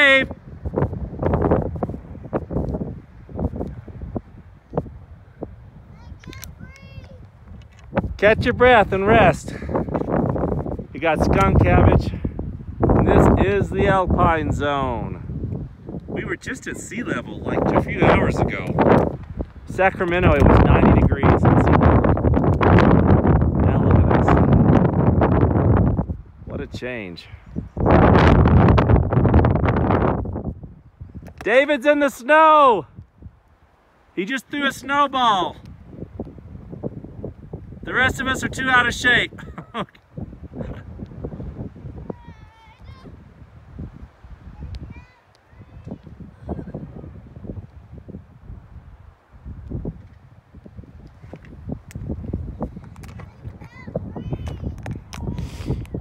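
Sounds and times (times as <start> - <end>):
wind gusting across microphone: 0.0 - 56.0.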